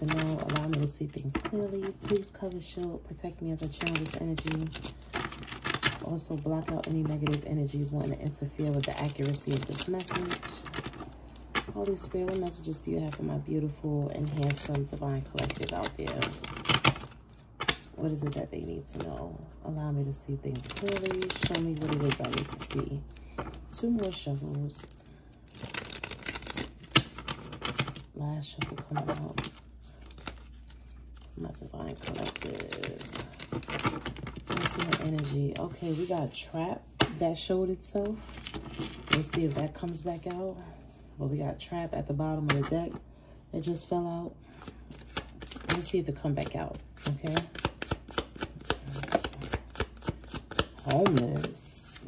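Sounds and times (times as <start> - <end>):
cards being shuffled: 0.0 - 2.9, 3.5 - 19.1, 20.5 - 36.3, 44.6 - 52.0.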